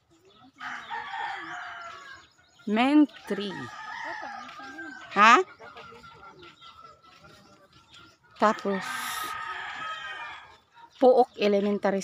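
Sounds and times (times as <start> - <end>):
rooster crowing: 0.6 - 2.2, 3.5 - 5.1, 8.5 - 10.5.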